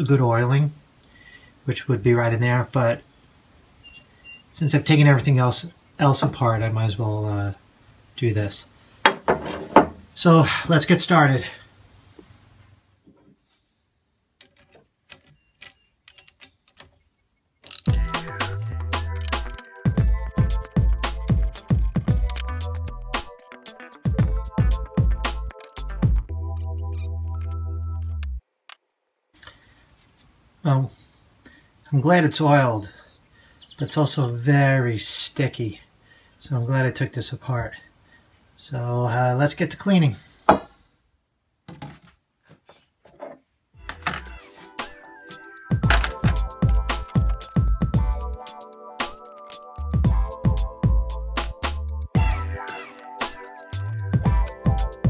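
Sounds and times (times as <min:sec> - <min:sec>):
metal parts knocking on wooden bench: 0:09.0 - 0:10.0, 0:43.2 - 0:44.3, 0:45.8 - 0:47.3
socket ratchet clicking: 0:17.6 - 0:19.9, 0:20.5 - 0:23.6, 0:45.3 - 0:49.8, 0:51.1 - 0:54.0
loud music: 0:17.9 - 0:26.2, 0:43.8 - 0:55.0.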